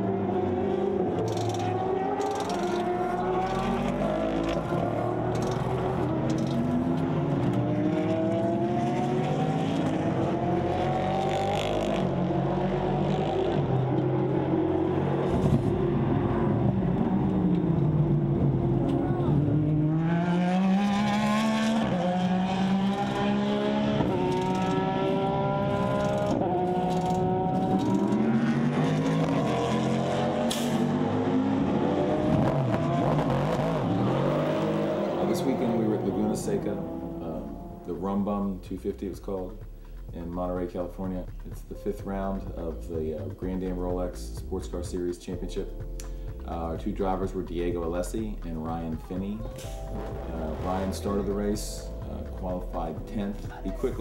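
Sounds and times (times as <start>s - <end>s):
racing car engines revving: 0.0s - 38.2s, 47.2s - 54.0s.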